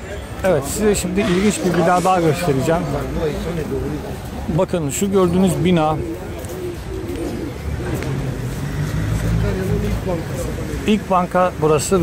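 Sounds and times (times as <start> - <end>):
faint voices of passers-by: 0.0 - 12.0
vehicle engine humming: 0.0 - 12.0.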